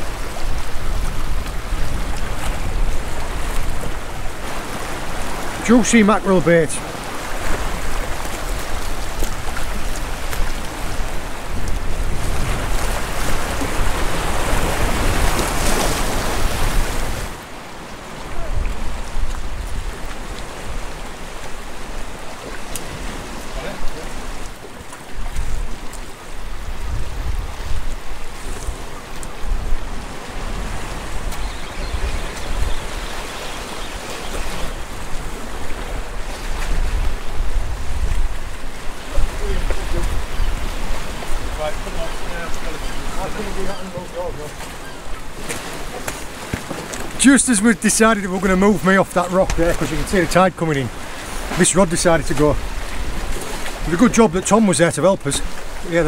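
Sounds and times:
wind buffeting microphone: 0:00.0 - 0:06.0, 0:06.8 - 0:17.4, 0:18.2 - 0:47.2
surf washing over rocks: 0:00.0 - 0:56.0.

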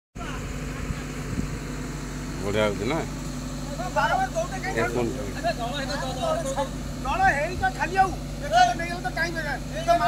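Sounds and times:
diesel engine running: 0:00.2 - 0:10.0.

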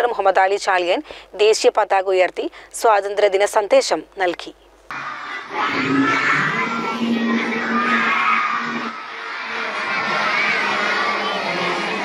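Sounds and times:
children shouting and cheering: 0:04.9 - 0:12.0.

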